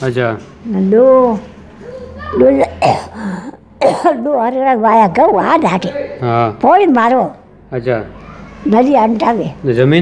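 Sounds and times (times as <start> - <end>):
person coughing: 2.6 - 4.2.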